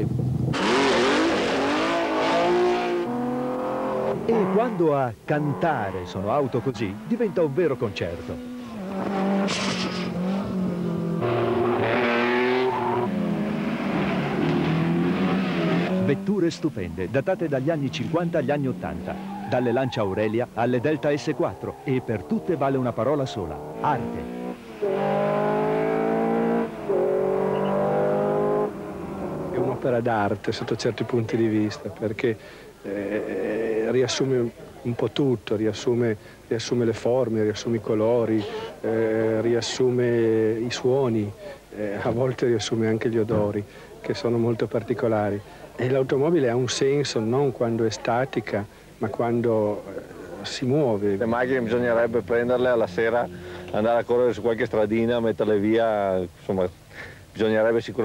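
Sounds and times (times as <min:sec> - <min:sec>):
exhaust rushing: 0:00.5 - 0:04.8, 0:05.7 - 0:16.7, 0:18.0 - 0:29.9
racing car engine accelerating: 0:00.5 - 0:04.8, 0:06.5 - 0:16.3, 0:21.2 - 0:29.8.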